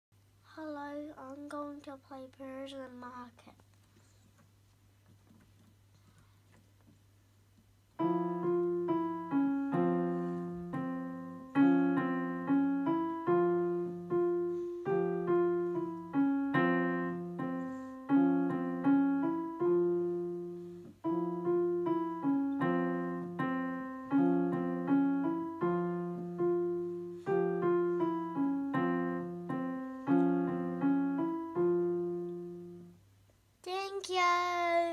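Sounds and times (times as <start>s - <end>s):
digital piano playing: 8.0s - 33.0s.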